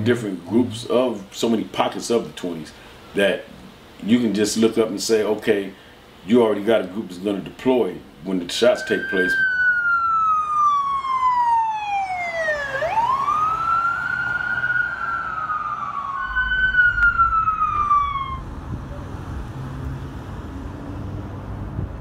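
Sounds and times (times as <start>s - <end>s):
street and traffic noise: 8.1s - 22.0s
emergency siren wailing: 8.6s - 19.2s.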